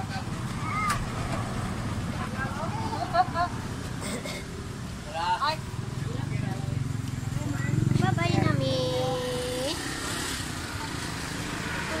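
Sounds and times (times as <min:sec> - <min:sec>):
small engine running: 0:07.4 - 0:12.0.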